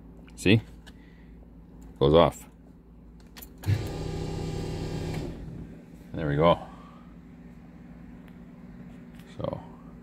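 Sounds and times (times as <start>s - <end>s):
fuel pump humming: 3.6s - 5.7s.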